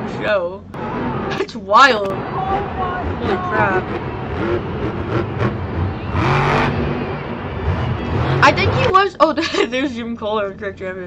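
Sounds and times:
crowd cheering: 0.8 - 1.4, 2.1 - 9.0
monster truck engine running hard: 2.1 - 8.9.

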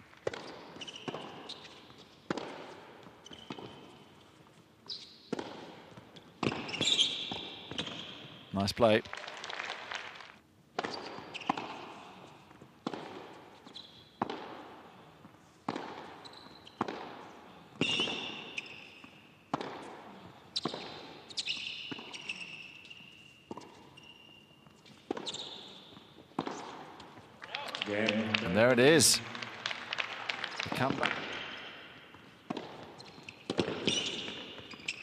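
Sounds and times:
tennis racket striking ball: 0.2 - 3.8, 5.0 - 8.0, 12.6 - 14.8, 15.6 - 17.2, 17.8 - 24.0, 25.0 - 27.2, 30.8 - 35.0
tennis ball bouncing: 0.2 - 4.1, 4.8 - 8.4, 10.7 - 24.1, 24.8 - 27.3, 30.4 - 35.0
shoe squeaks on court: 0.3 - 2.3, 3.0 - 5.5, 6.2 - 8.5, 10.8 - 11.9, 13.6 - 14.2, 16.0 - 17.0, 17.8 - 19.8, 20.5 - 26.9, 30.7 - 35.0.

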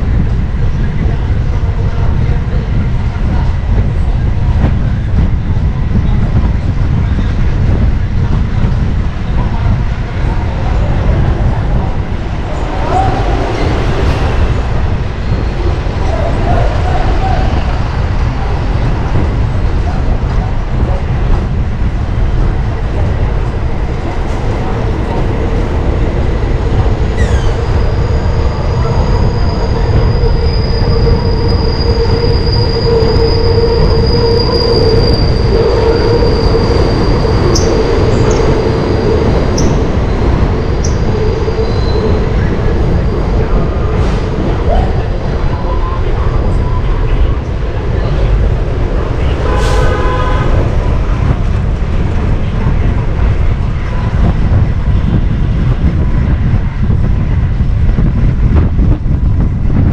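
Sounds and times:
wind rumble on microphone: 0.0 - 59.9
road traffic: 10.0 - 58.1
train wheels squealing on rail: 27.1 - 47.4.

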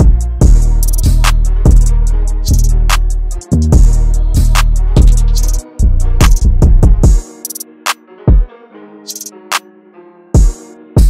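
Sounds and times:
sliding bass notes: 0.0 - 7.2
hi-hats: 0.0 - 7.7, 9.1 - 9.3, 10.4 - 10.7
piano: 0.0 - 11.0.

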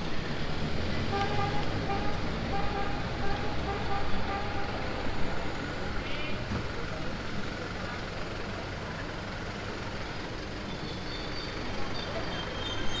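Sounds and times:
passing vehicle engines: 0.0 - 13.0
steady road noise: 0.0 - 13.0.

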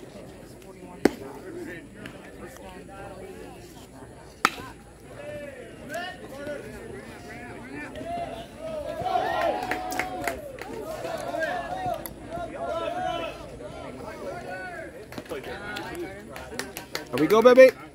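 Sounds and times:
spectators shouting and cheering: 5.1 - 16.2.

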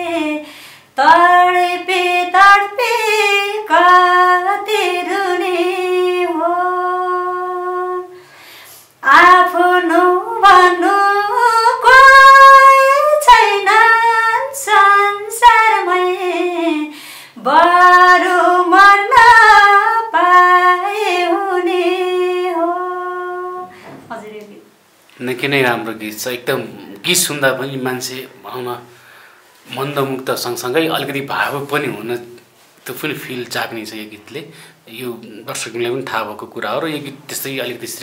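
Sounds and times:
woman singing unaccompanied: 0.0 - 8.2, 9.0 - 24.6.

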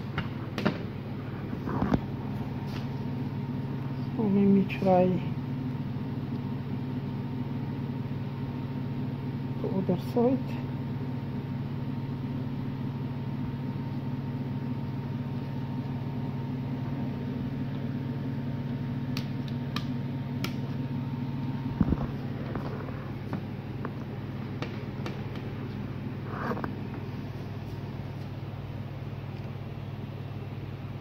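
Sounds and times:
background hum: 0.0 - 31.0
faint steady whine: 0.0 - 31.0.

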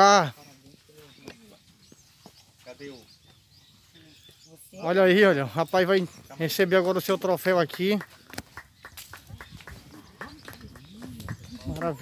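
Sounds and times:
faint indistinct voices: 9.6 - 12.0.

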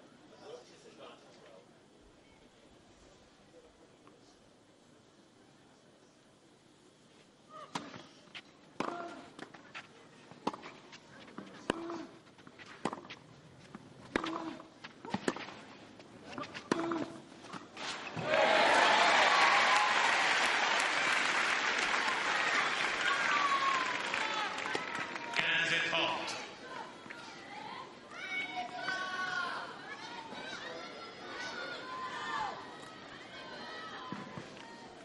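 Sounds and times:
racket striking tennis ball: 14.0 - 15.6, 16.3 - 18.3
crowd cheering and applauding: 18.2 - 25.4
crowd shouting: 18.2 - 25.4.

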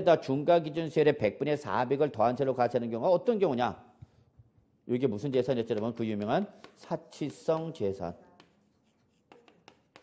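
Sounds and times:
chalk tapping and scratching: 5.6 - 10.0.

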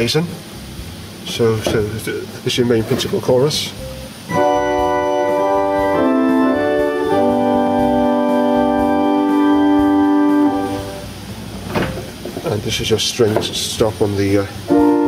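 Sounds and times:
pipe organ chords: 3.7 - 12.2, 14.6 - 15.0.

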